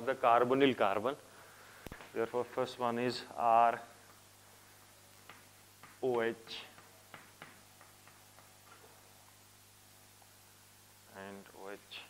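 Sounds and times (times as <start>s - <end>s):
chalk writing on chalkboard: 5.2s - 8.9s.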